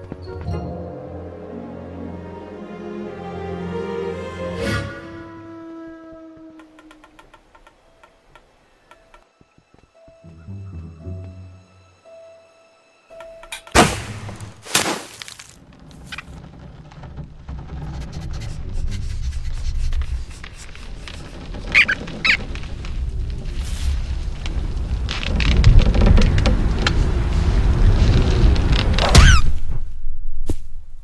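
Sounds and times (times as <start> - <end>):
dry creaking clicks of wood: 6.4 - 9.3
high-pitched cartoon squeaks: 21.1 - 22.5, 29.1 - 29.5.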